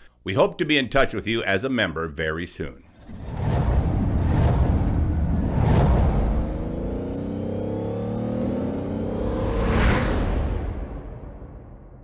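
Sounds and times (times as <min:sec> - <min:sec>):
deep rumble: 0:02.9 - 0:08.4
music-like sound design: 0:02.9 - 0:12.0
rising tone: 0:02.9 - 0:12.0
whooshes: 0:02.9 - 0:12.0.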